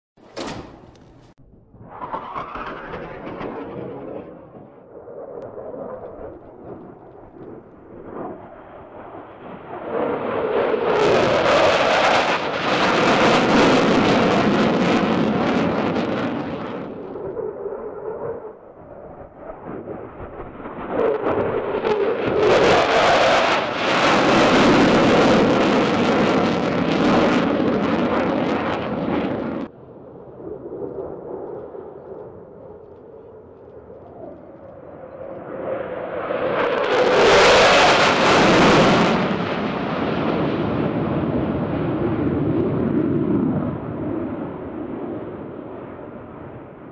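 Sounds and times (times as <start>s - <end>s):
distant low rumble: 0.2s - 11.5s, 24.0s - 36.2s
jet engines roaring on passes: 0.3s - 46.9s.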